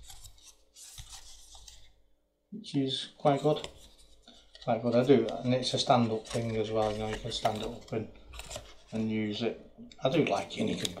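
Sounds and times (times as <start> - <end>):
card leaflet rustling on cardboard: 0.0 - 2.0, 3.2 - 9.5, 10.1 - 11.0.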